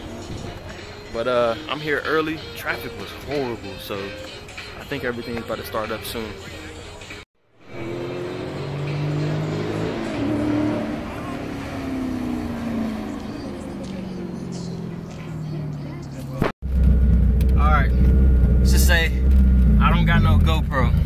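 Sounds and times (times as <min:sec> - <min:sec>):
car engine racing past: 0:07.7 - 0:14.0.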